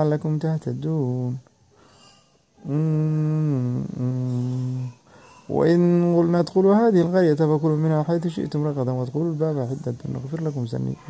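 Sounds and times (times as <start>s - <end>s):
man humming long notes: 2.6s - 4.9s.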